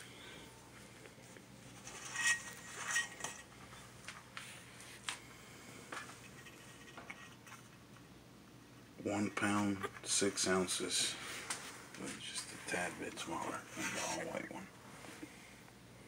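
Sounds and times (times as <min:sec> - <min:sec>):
metallic clatter and scraping: 0:01.7 - 0:03.8.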